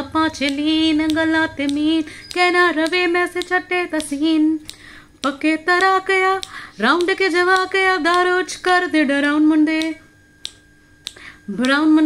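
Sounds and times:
finger snaps: 0.4 - 8.3, 9.2 - 11.8.

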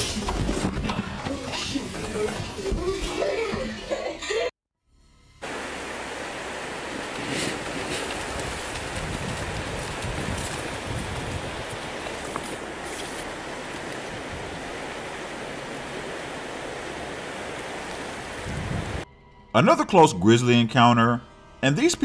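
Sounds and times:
river rushing: 5.4 - 19.0
bear splashing through water: 5.9 - 18.8.

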